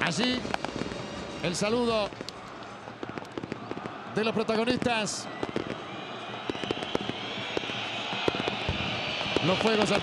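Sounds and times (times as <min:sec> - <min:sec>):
fireworks crackling: 0:00.0 - 0:10.0
stadium crowd background noise: 0:00.0 - 0:10.0.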